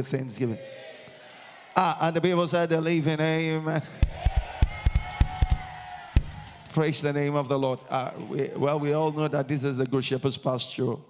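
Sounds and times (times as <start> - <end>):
drum kit hits: 4.0 - 6.6.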